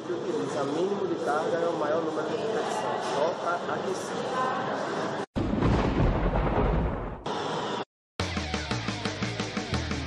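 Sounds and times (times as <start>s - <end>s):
deep thunder boom: 5.4s - 7.3s.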